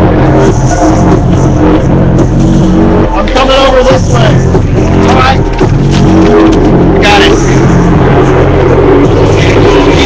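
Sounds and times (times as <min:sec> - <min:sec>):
loud distorted bass music: 0:00.0 - 0:10.0
voice over music: 0:06.2 - 0:10.0.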